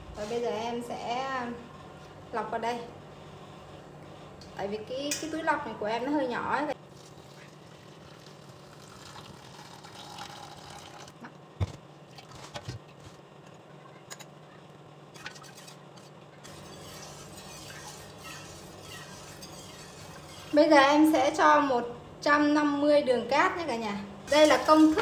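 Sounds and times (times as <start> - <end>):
tea pouring and dripping: 6.9 - 11.2.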